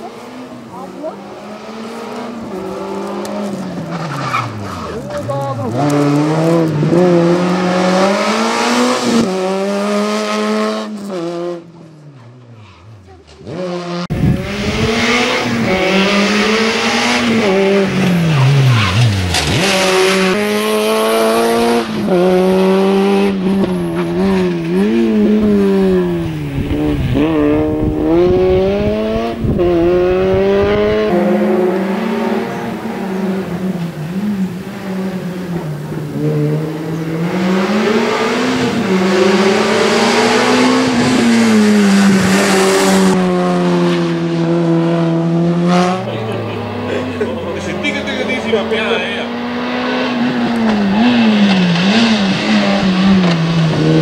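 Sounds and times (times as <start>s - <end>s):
race car engine revving: 0.0s - 54.0s.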